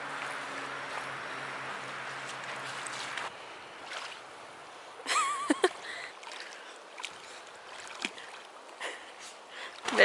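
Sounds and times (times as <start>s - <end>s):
waves lapping on gravel: 0.0s - 4.3s
faint low engine hum: 0.0s - 10.0s.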